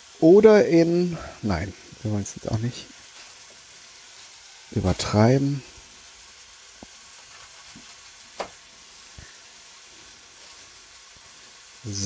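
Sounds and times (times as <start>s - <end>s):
chicken sizzling in a pan: 0.0s - 12.0s.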